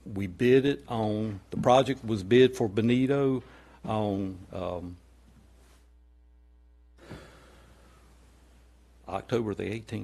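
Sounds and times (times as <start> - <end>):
low electrical hum: 0.0 - 10.0
man breathing in: 3.4 - 3.9, 7.0 - 8.2.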